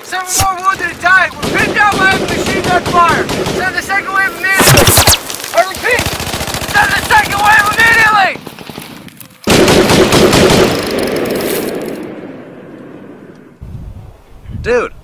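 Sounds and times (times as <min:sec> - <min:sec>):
machine-gun fire: 0:00.8 - 0:08.8, 0:09.5 - 0:12.3
people shouting: 0:06.7 - 0:08.4.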